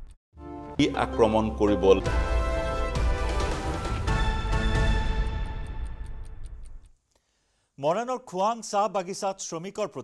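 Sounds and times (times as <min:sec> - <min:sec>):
news title music: 0:00.4 - 0:06.5
clock-like ticking beat: 0:04.1 - 0:07.0.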